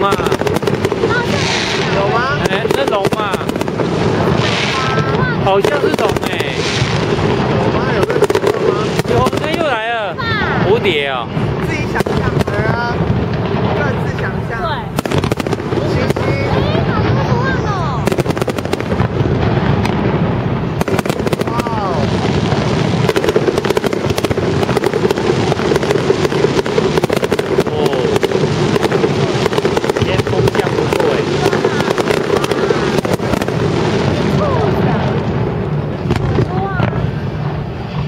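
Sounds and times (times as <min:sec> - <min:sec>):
voices: 0:00.0 - 0:19.2, 0:21.0 - 0:37.8
fireworks bangs and crackles: 0:00.0 - 0:38.0.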